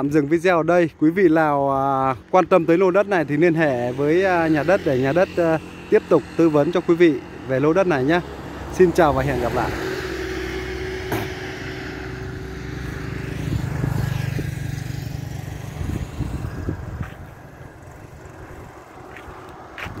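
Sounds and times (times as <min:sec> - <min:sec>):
vehicle passing by: 0:00.7 - 0:20.0.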